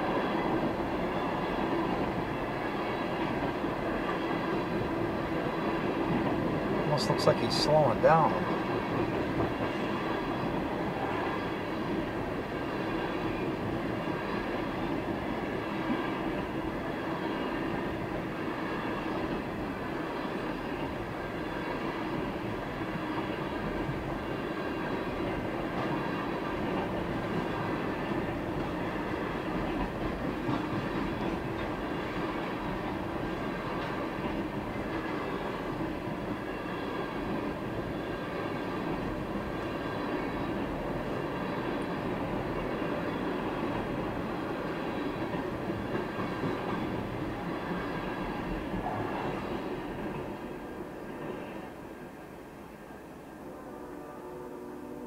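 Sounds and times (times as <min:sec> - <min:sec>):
freight train wheels rumbling: 0:00.0 - 0:55.0.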